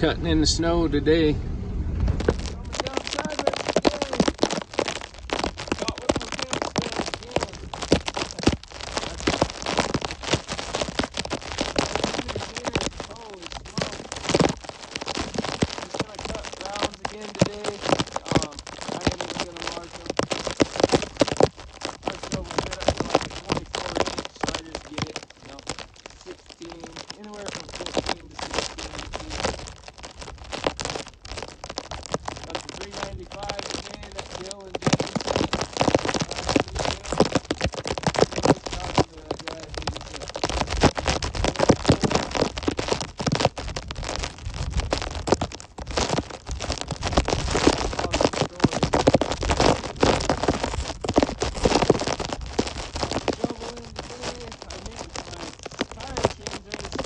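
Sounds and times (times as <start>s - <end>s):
crackling and popping on microphone: 0.0s - 57.0s.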